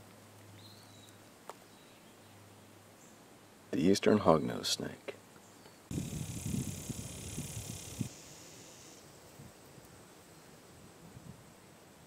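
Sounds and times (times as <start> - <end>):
faint background hiss: 0.0 - 12.0
wind buffeting microphone: 5.9 - 8.2
high steady buzz: 5.9 - 9.1.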